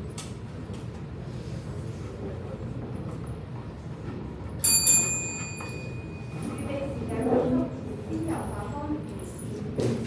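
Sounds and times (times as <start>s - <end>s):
bell struck: 4.6s - 6.7s.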